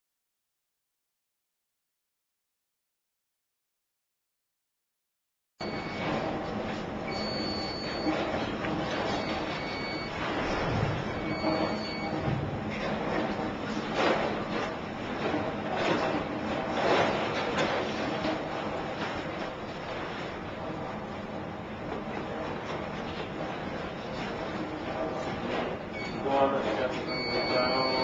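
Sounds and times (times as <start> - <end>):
high electronic beep: 5.6 - 6.2, 7.1 - 8.2, 11.2 - 12.2, 27.1 - 28.0.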